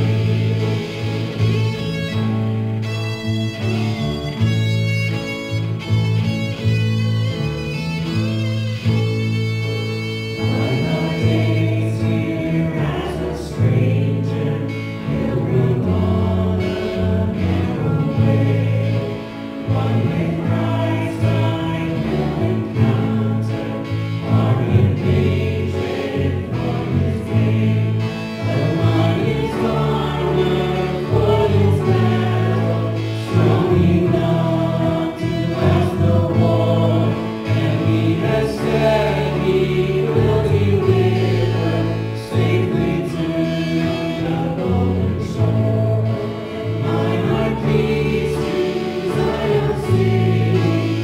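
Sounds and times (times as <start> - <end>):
group singing with piano and guitars: 0.0 - 51.0
steady bass line: 0.0 - 51.0.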